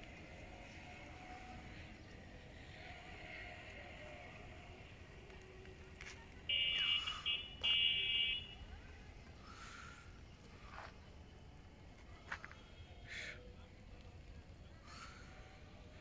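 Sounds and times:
outdoor background noise: 0.0 - 16.0
vehicle horn blasts: 6.5 - 8.6.

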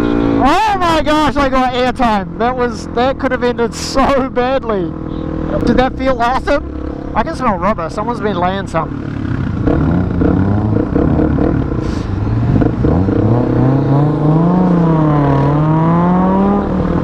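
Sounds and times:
motorcycle engine accelerating: 0.0 - 17.0.

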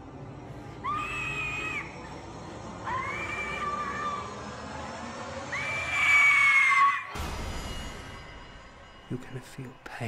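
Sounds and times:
long high scream: 0.7 - 2.1, 2.8 - 4.6, 5.4 - 7.2
deep impact hit with noise rush: 7.2 - 9.0.

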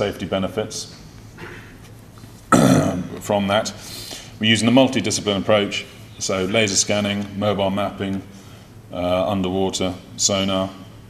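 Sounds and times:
man's rough throat noise: 2.5 - 3.2.

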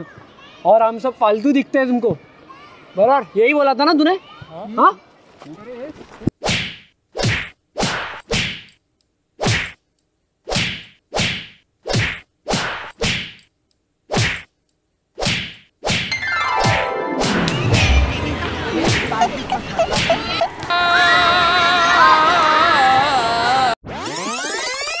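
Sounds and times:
swish sound effects: 15.2 - 19.2
music: 16.2 - 18.4.

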